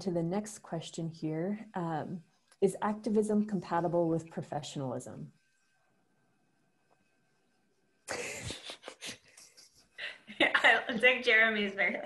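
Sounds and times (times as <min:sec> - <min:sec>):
man laughing in breathy bursts: 0:08.1 - 0:10.3.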